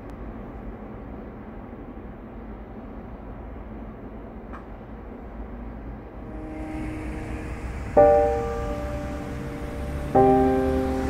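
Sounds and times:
low background rumble: 0:00.0 - 0:11.0
faint held musical notes: 0:06.2 - 0:11.0.

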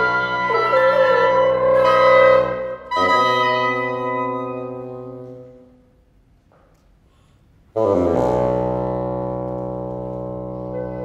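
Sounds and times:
woodwind quintet playing chords: 0:00.0 - 0:06.0, 0:07.8 - 0:11.0.

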